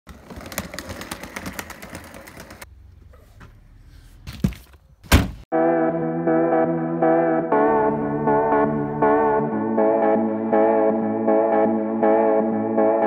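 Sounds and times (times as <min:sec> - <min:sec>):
outdoor background noise: 0:00.1 - 0:05.4
guitar music: 0:05.6 - 0:13.0.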